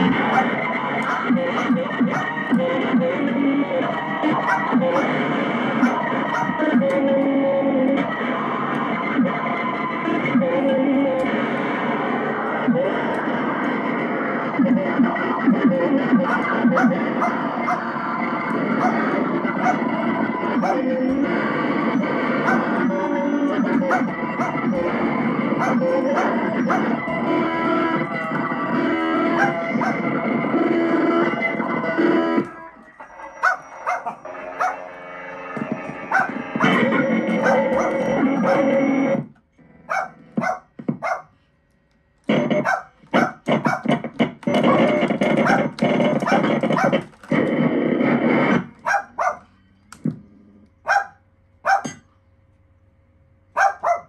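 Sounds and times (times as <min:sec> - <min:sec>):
glitchy electronic keyboard sounds: 0:00.0 - 0:41.2, 0:42.2 - 0:50.2.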